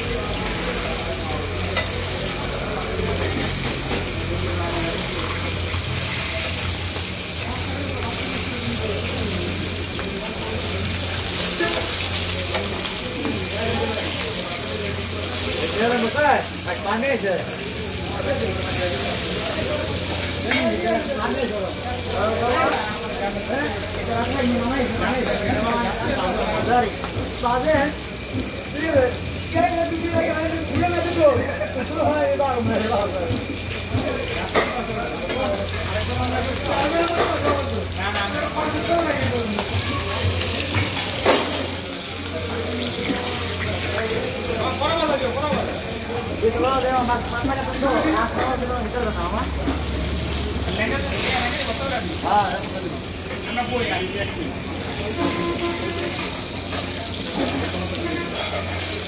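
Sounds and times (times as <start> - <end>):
fish sizzling in oil: 0.0 - 59.0
metal spatula on griddle: 0.3 - 16.8, 18.4 - 21.3, 32.7 - 45.0, 54.8 - 59.0.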